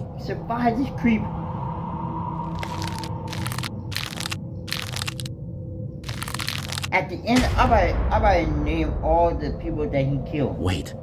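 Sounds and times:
rough crackling bursts: 2.5s - 5.3s, 6.0s - 7.0s.

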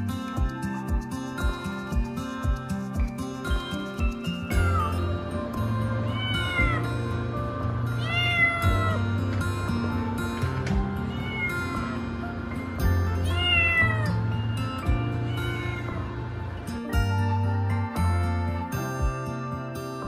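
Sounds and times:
background music: 0.0s - 20.0s
cat meowing: 4.6s - 5.1s, 6.0s - 6.8s, 8.0s - 9.0s, 10.9s - 12.0s, 13.2s - 16.2s.

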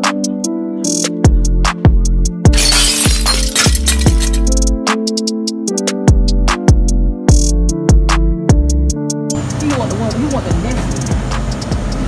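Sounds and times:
electronic music with drum beat: 0.0s - 2.5s, 4.4s - 12.0s
glass shattering: 2.5s - 4.7s.

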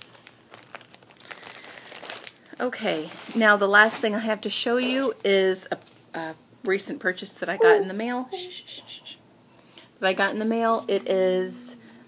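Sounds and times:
faint crinkling and rustling: 0.0s - 6.4s.

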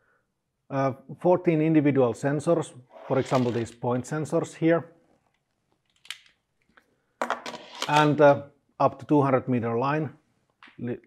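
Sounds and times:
man speaking: 0.7s - 4.9s, 7.9s - 10.2s, 10.8s - 11.0s.

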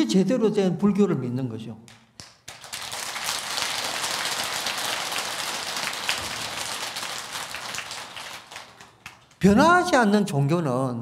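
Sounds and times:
audience applause: 2.4s - 9.6s.

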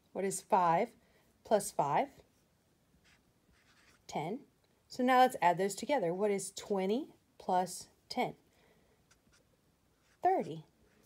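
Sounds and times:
marker writing on paper: 3.0s - 4.1s, 9.1s - 11.0s.

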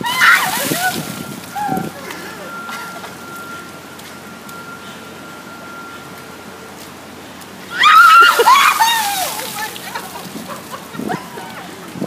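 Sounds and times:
ice water splashing on pavement: 0.0s - 4.2s, 6.8s - 12.0s.

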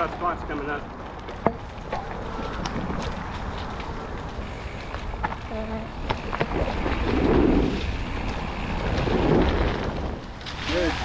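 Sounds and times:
bike tyres rolling on dirt: 0.0s - 11.0s
wind buffeting microphone: 0.0s - 11.0s.

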